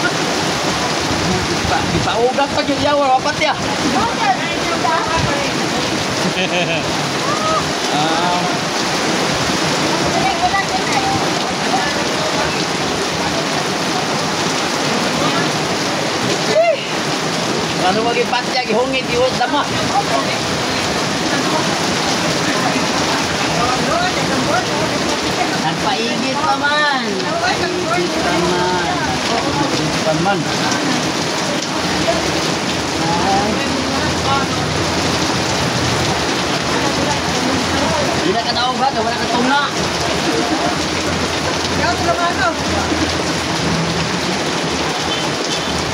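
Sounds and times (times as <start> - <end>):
faint voices talking: 0.0 - 45.9
rain falling: 0.0 - 45.9.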